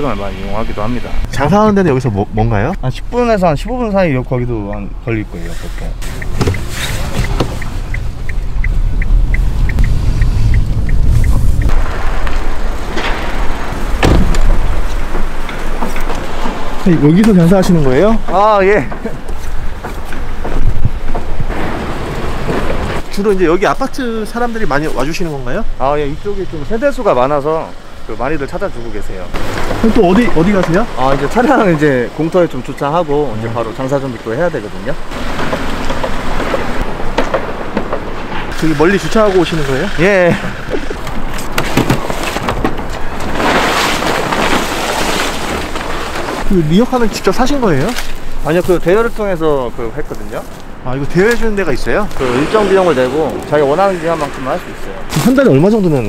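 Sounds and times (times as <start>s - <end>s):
car engine and road rumble: 0.0s - 56.0s
outdoor street noise: 0.0s - 56.0s
passing traffic: 0.0s - 56.0s
wind buffeting microphone: 2.3s - 24.6s
turn signal ticking: 2.7s - 11.9s
thuds: 6.0s - 7.7s, 11.7s - 16.8s, 41.4s - 46.5s.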